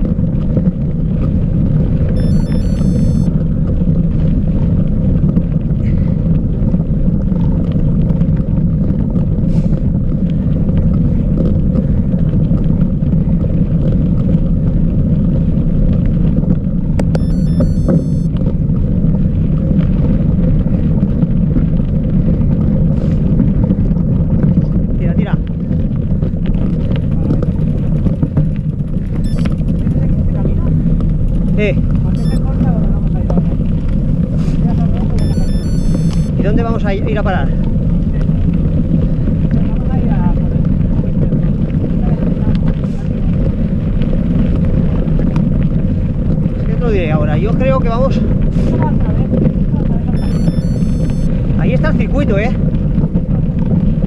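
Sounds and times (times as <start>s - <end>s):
high chirps: 2.2s - 3.3s, 17.2s - 18.3s, 29.3s - 29.6s, 32.2s - 32.5s, 35.2s - 36.3s, 50.2s - 51.3s.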